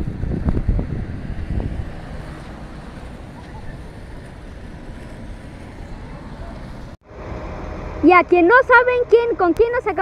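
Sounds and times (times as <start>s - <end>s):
quiet street ambience: 0.0s - 10.0s
street traffic engines rumbling: 0.0s - 10.0s.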